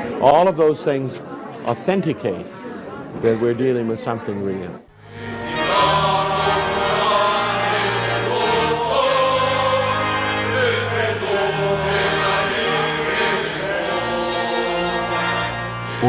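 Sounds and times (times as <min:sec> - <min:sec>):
choir singing held notes: 0:04.9 - 0:16.0.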